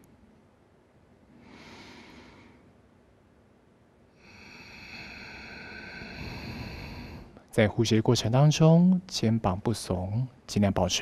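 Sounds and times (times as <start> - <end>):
deep breath: 1.3 - 2.8, 4.1 - 7.5.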